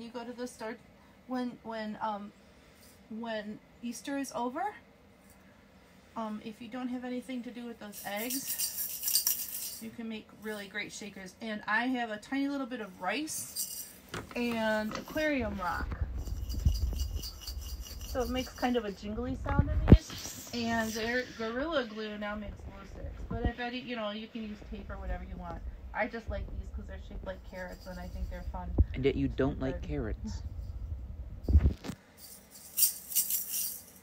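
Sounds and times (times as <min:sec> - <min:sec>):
plastic shaker rattling: 0:07.8 - 0:09.9, 0:13.4 - 0:19.1, 0:27.4 - 0:28.6, 0:31.5 - 0:34.0.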